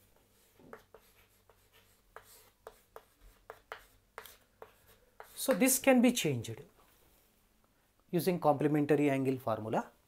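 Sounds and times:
chalk tapping on chalkboard: 0.1 - 5.8.

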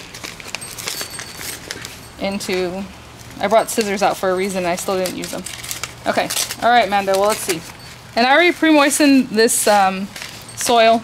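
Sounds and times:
paper packet rustling: 0.0 - 10.7.

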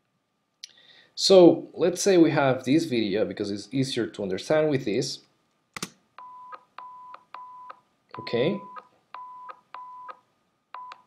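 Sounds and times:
beep clicks: 6.2 - 10.2, 10.8 - 11.0.

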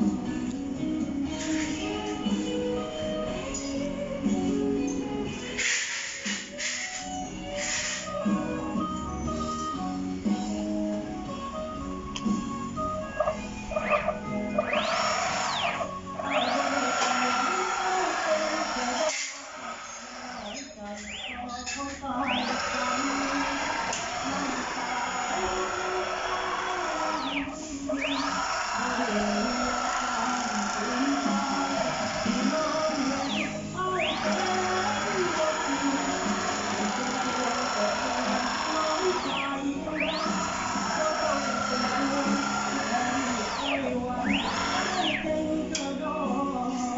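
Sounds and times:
router motor high whine: 13.0 - 21.4, 22.0 - 45.4.

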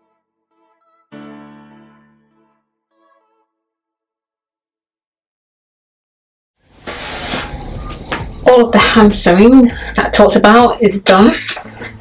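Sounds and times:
fabric rustling on a table: 6.7 - 8.2.

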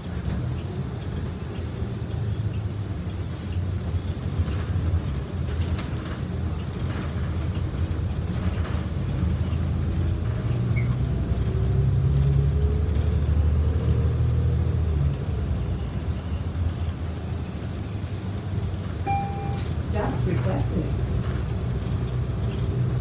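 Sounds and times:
bus engine rumble: 0.0 - 23.0.

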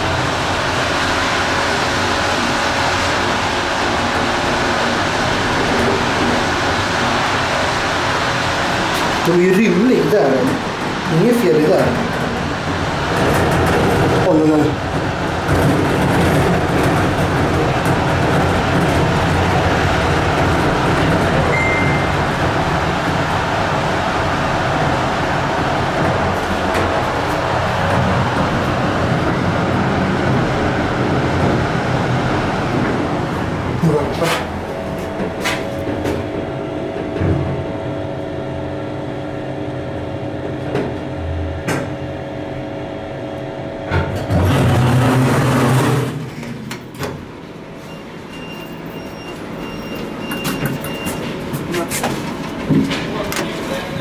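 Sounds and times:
elevator running: 0.0 - 54.0.

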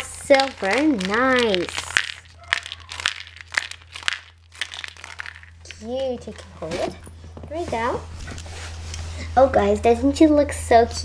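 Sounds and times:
aluminium foil crinkling: 0.0 - 7.0.

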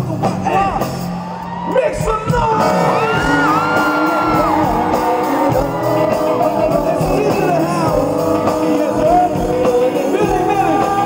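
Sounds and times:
live band with singers: 0.0 - 11.0
audience shouting: 2.8 - 7.6.

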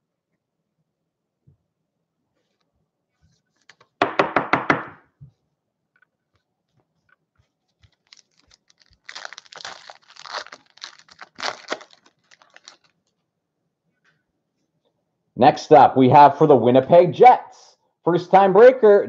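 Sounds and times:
sharp knocks: 4.0 - 5.0
wrapper crinkling: 7.1 - 13.2
foil pack tearing open: 7.9 - 13.0.

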